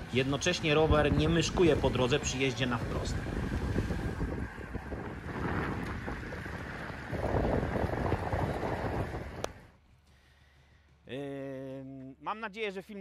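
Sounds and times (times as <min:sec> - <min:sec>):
wind buffeting microphone: 0:00.0 - 0:09.7
road noise rumble: 0:00.0 - 0:12.2.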